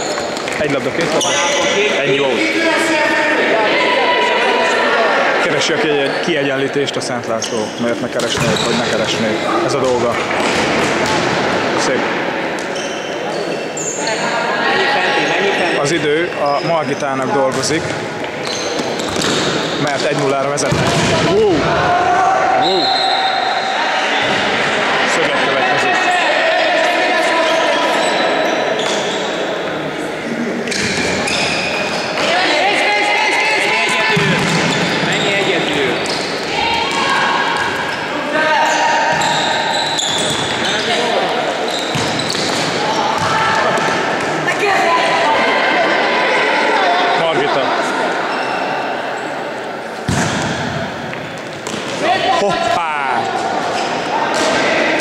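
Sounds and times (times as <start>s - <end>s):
sports shoes squeaking on floor: 0.0s - 2.1s, 7.3s - 11.2s, 12.6s - 14.4s, 15.2s - 20.3s, 27.4s - 29.8s, 30.7s - 32.4s, 33.7s - 43.8s, 48.3s - 49.3s
players' voices: 0.0s - 55.0s.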